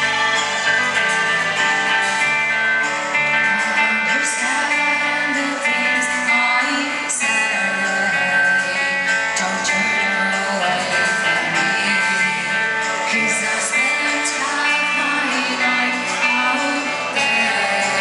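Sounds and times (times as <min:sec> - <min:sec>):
rock band playing: 0:00.0 - 0:18.0
strummed guitar: 0:00.0 - 0:18.0
woman singing: 0:03.1 - 0:18.0.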